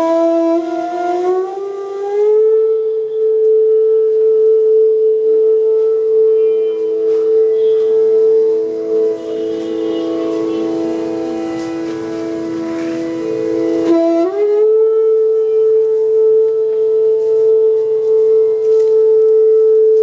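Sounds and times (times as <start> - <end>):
bamboo flute held tone: 0.0 - 20.0
second flute low sustained note: 0.0 - 20.0.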